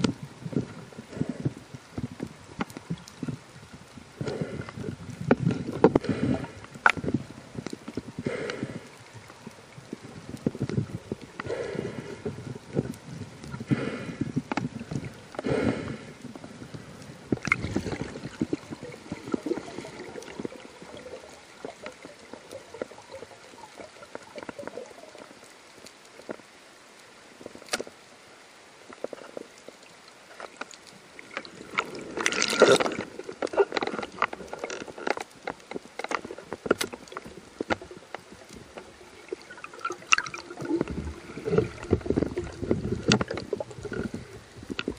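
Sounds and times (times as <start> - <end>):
underwater knocks and clicks: 0.0 - 15.5, 16.2 - 25.3, 30.4 - 44.9
water hiss: 0.0 - 35.2, 35.8 - 44.9.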